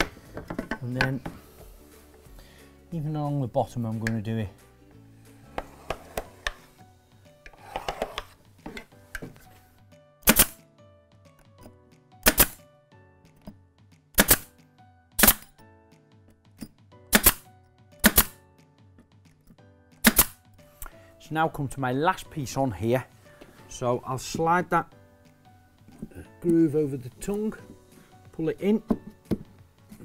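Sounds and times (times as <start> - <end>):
nail gun shots: 10.2 - 10.6, 12.2 - 12.6, 14.2 - 14.5, 15.2 - 15.5, 17.1 - 18.4, 20.0 - 20.4.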